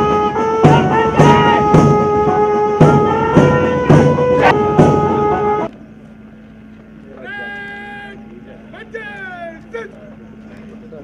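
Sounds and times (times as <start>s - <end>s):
steady low hum: 0.0s - 11.0s
man shouting drill command: 0.7s - 1.7s, 7.2s - 10.0s.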